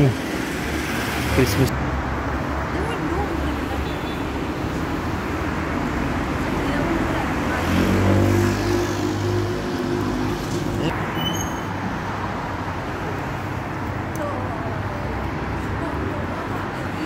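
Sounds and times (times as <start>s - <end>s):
road traffic noise: 0.0s - 17.0s
vehicle engine passing: 4.8s - 11.0s.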